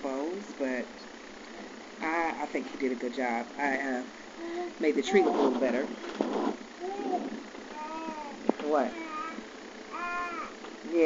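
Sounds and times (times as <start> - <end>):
baby cooing cries: 6.8 - 8.4, 9.0 - 10.6.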